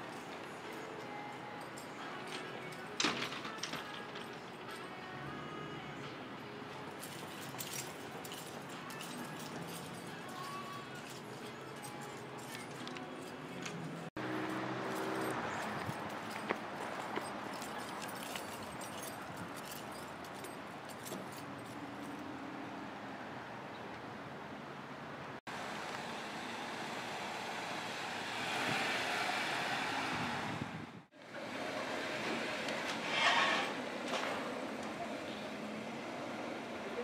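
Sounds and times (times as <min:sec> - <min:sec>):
traffic noise: 0:00.0 - 0:37.0.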